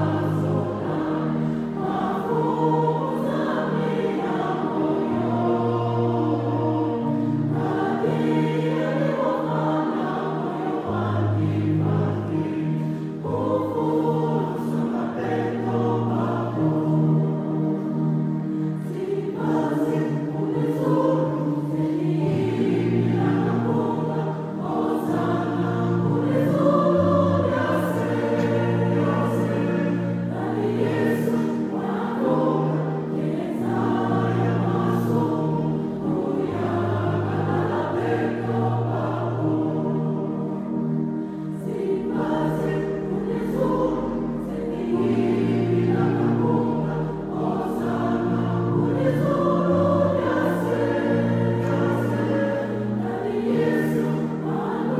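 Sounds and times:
choir singing gospel song: 0.0s - 54.9s.

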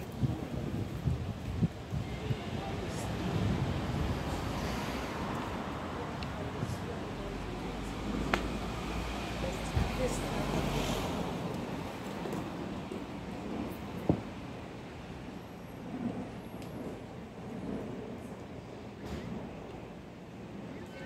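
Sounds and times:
traffic hum: 0.0s - 21.0s
vehicle rumble: 0.0s - 21.0s.

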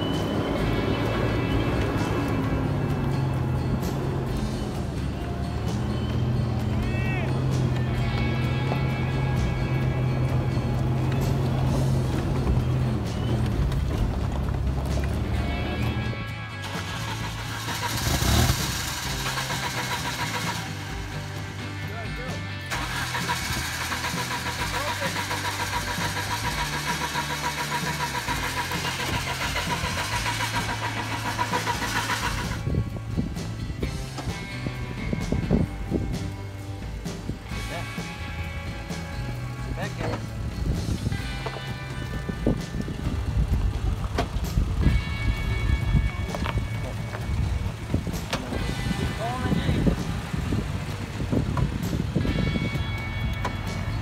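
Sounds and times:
background music: 0.0s - 54.0s
truck engine labouring: 0.0s - 54.0s.

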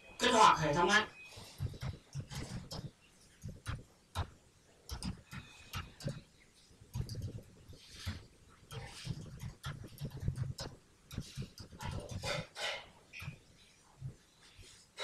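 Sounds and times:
soft breathy noises: 1.2s - 3.8s, 4.7s - 15.0s.

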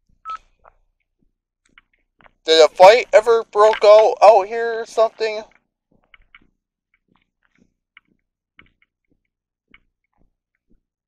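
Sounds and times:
faint small clicks and crackles: 0.4s - 2.4s, 5.5s - 11.0s.

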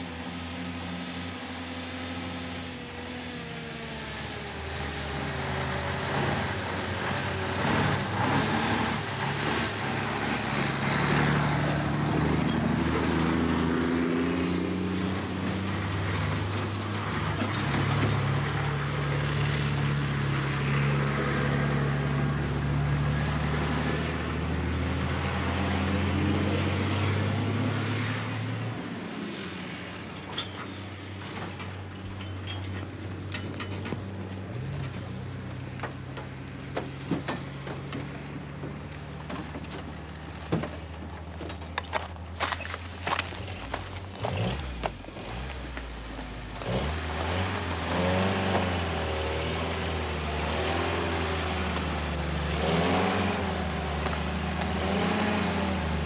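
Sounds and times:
truck diesel engines accelerating: 0.0s - 56.0s.

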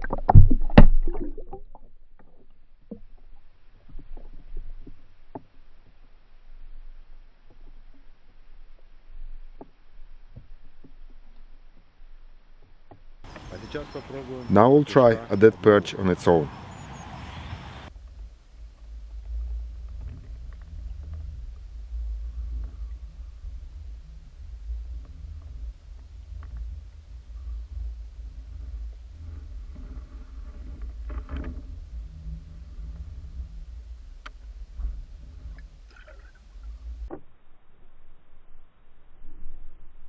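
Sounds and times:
underwater rumble: 0.0s - 40.0s
faint clicks and knocks: 17.9s - 37.3s.

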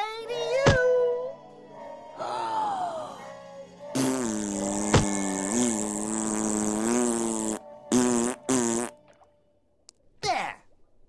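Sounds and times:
cartoon character blowing raspberry: 4.0s - 9.0s.

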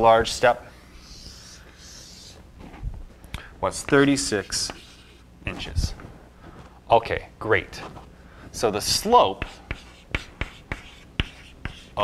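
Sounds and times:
chalk tapping on blackboard: 3.8s - 5.2s, 9.3s - 12.0s.

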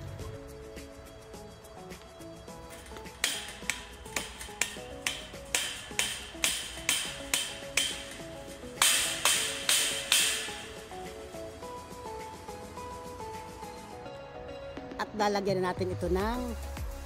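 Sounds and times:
background music: 0.0s - 17.0s
hammer striking metal post: 2.7s - 11.2s.

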